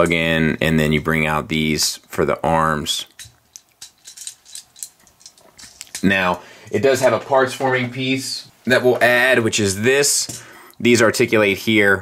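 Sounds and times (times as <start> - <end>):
plastic toy parts clicking: 3.2 - 6.0.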